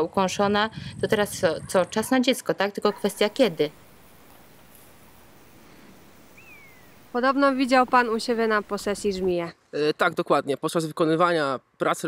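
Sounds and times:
faint rural ambience: 0:00.0 - 0:11.9
bird whistle: 0:06.4 - 0:07.0.

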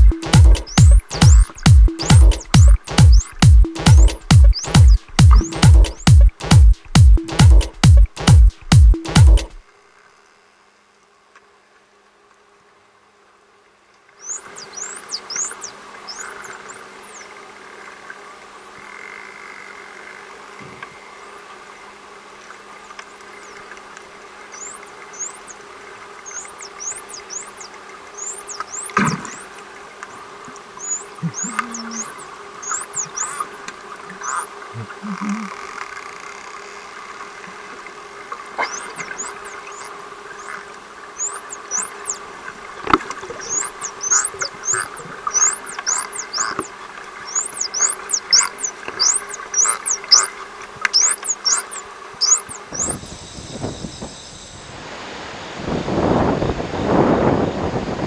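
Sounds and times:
dolphins whistling underwater: 0:00.0 - 0:06.2, 0:14.2 - 0:17.4, 0:24.6 - 0:35.6, 0:38.4 - 0:54.8
sharp clicks: 0:00.0 - 0:09.6
steady low hum: 0:00.0 - 0:09.7, 0:24.5 - 0:35.6.

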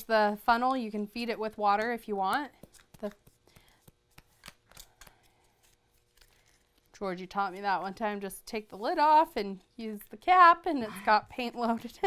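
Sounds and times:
paper rustling and creasing: 0:04.2 - 0:07.0.

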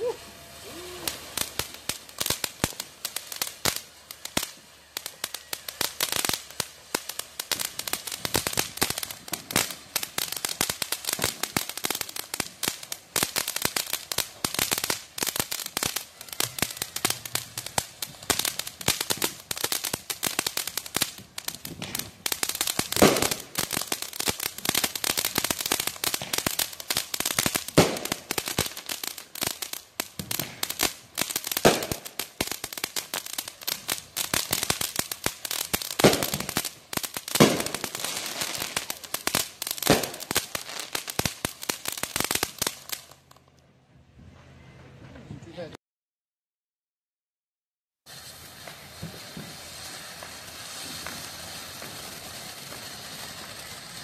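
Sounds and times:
fireworks bangs: 0:00.0 - 0:43.5, 0:48.1 - 0:54.0
fireworks crackling: 0:00.0 - 0:43.6, 0:48.0 - 0:54.0.

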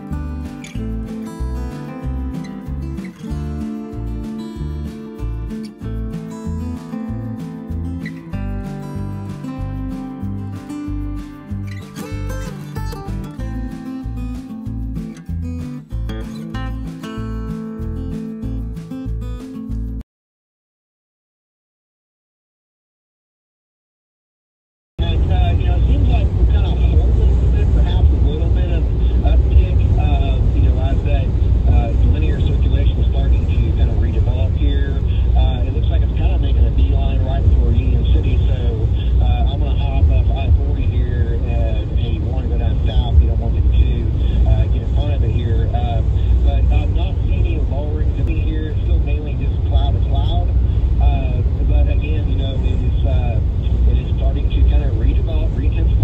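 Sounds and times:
car road and engine noise: 0:25.0 - 0:56.0
indistinct voices talking: 0:25.0 - 0:56.0.

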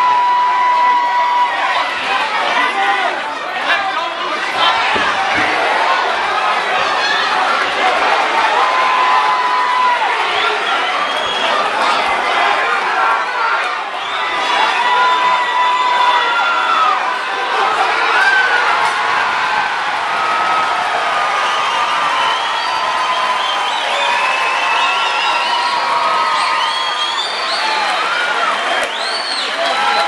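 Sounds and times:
crowd cheering and shouting: 0:00.0 - 0:30.0.

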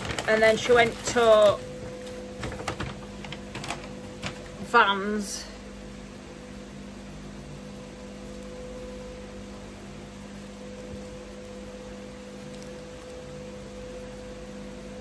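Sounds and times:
low hum with two tones: 0:00.0 - 0:15.0.

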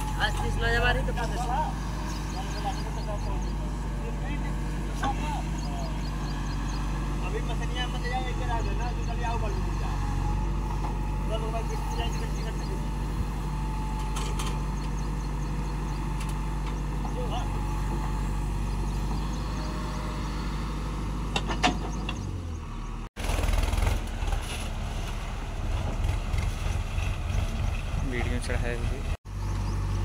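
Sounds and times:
diesel engine running: 0:00.0 - 0:30.0.

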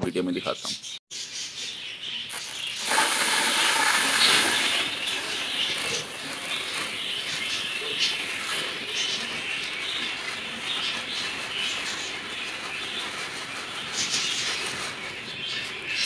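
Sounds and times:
seeds pouring into plastic tub: 0:02.3 - 0:16.0.

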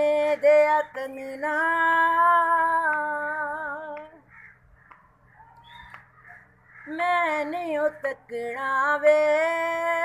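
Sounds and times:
woman singing unaccompanied: 0:00.0 - 0:04.3, 0:06.8 - 0:10.0.

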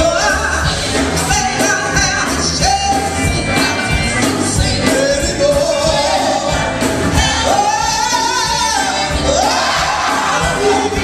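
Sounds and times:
women's group singing gospel: 0:00.0 - 0:11.0.

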